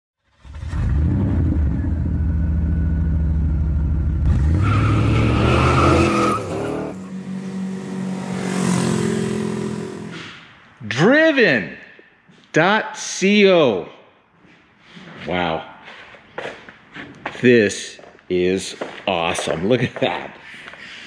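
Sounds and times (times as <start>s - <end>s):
high squeal: 4.5s - 7.7s.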